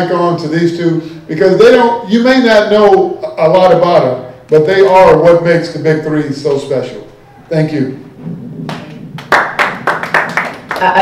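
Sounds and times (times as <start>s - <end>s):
hands clapping: 8.6s - 11.0s
woman speaking: 10.8s - 11.0s.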